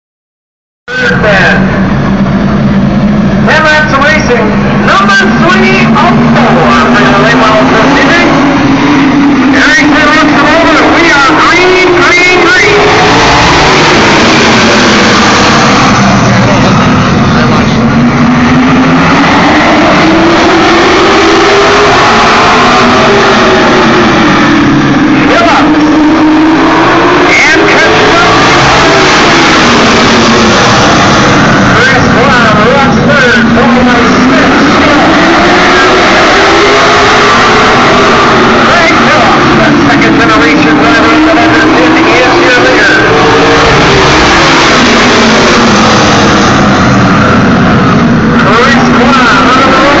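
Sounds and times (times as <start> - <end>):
race car engines: 0.9 - 50.0.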